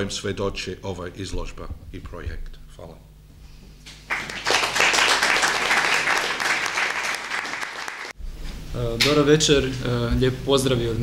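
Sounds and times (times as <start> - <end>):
audience applauding: 4.1 - 8.2.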